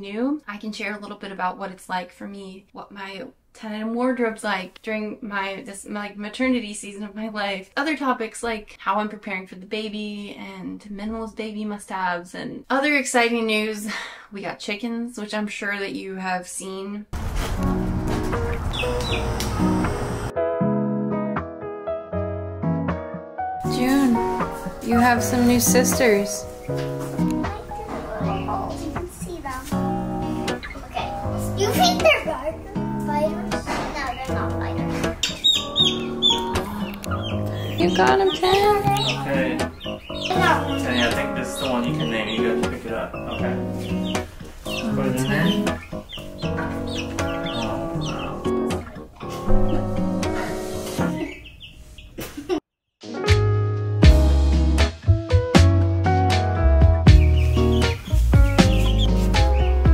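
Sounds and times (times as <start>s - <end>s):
background music: 17.5s - 51.3s, 53.0s - 59.9s
baby chicks peeping: 17.9s - 20.3s, 25.4s - 32.2s, 33.6s - 52.3s, 57.1s - 59.9s
high falling bird chirps: 18.4s - 20.3s, 29.9s - 32.0s, 35.2s - 48.7s, 51.2s - 52.2s, 57.2s - 59.8s.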